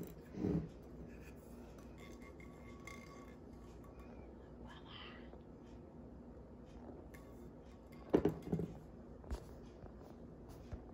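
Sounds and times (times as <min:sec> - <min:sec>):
tumbler knocking on tabletop: 0:07.9 - 0:08.8.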